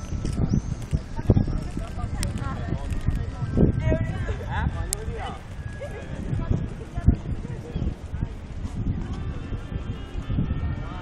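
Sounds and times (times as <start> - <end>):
low microphone rumble: 0.0 - 11.0
people talking in background: 0.0 - 11.0.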